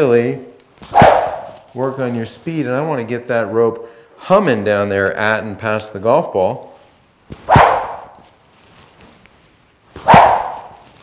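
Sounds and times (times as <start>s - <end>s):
rope whooshing through air: 0.8s - 1.8s, 7.4s - 9.0s, 10.0s - 11.0s.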